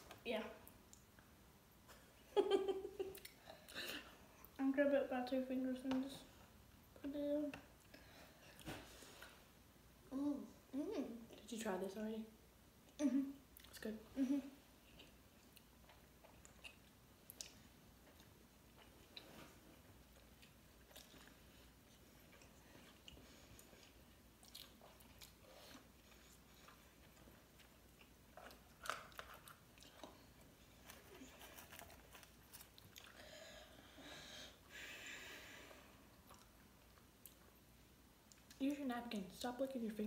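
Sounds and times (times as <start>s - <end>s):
faint chewing: 3.0s - 4.6s, 14.8s - 33.4s, 35.6s - 38.7s.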